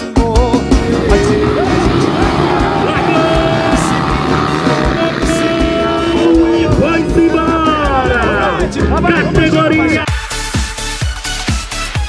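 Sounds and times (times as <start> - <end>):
music: 0.0 - 12.0
dirt bike engines revving: 0.4 - 10.1.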